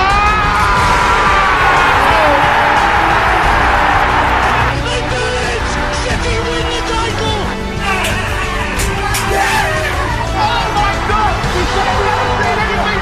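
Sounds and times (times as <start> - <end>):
commentator shouting: 0.0 - 7.5
background music: 0.0 - 13.0
stadium crowd roaring: 0.0 - 13.0.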